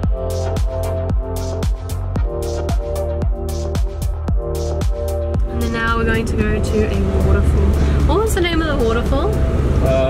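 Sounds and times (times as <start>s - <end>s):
background music: 0.0s - 10.0s
car engine rumble and road noise: 0.0s - 10.0s.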